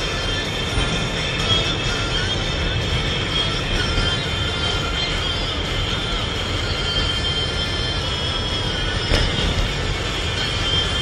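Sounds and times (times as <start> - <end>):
car engine and tyres rumbling: 0.0 - 11.0.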